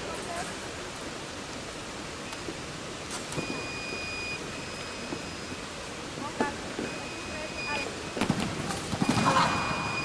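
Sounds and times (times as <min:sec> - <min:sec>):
hall background noise: 0:00.0 - 0:10.0
long electronic beeps: 0:03.4 - 0:05.6, 0:06.8 - 0:08.2, 0:09.0 - 0:10.0.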